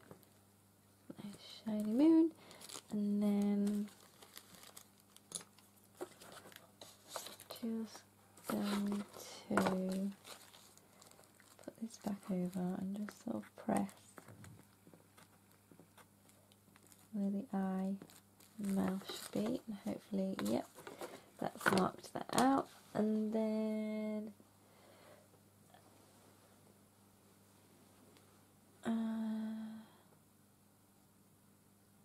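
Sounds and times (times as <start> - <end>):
paper crinkling: 1.4 - 17.2, 17.9 - 22.6
woman humming: 28.8 - 30.0.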